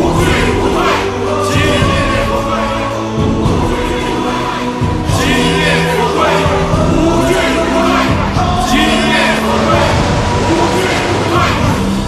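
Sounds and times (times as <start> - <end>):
background music: 0.0 - 12.0
crowd chanting in unison: 0.0 - 12.0.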